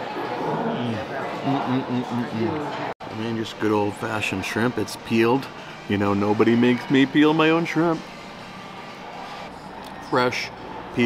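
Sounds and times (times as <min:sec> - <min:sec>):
restaurant background noise: 0:00.0 - 0:11.0.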